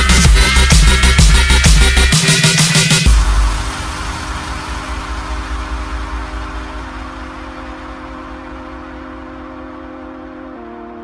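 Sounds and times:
sustained synth chords: 3.0s - 11.0s
wash of noise: 3.1s - 11.0s.

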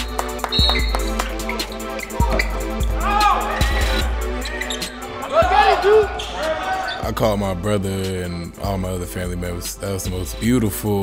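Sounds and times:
sneakers squeaking: 0.0s - 7.1s
music track: 0.0s - 11.0s.

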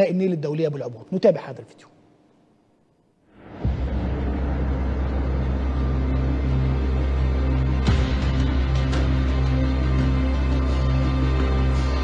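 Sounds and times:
low bass drone music: 3.4s - 12.0s.

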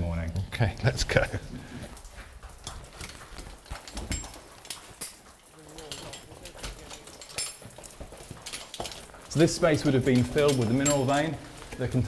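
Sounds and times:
metallic clinks of climbing gear: 0.8s - 12.0s.

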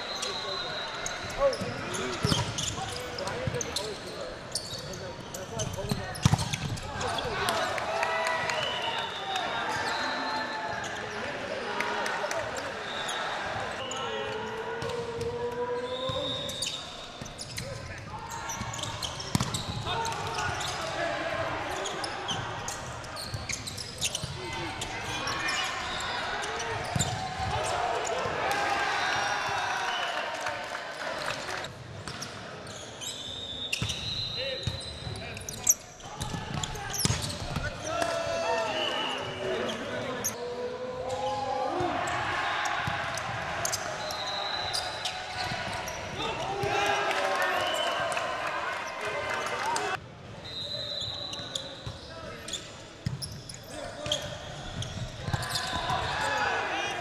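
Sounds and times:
referee's whistle blasts: 0.0s - 2.8s, 8.4s - 10.7s, 12.8s - 14.4s, 33.0s - 35.2s, 43.9s - 45.7s, 50.4s - 52.1s
players calling and shouting: 0.0s - 57.0s.

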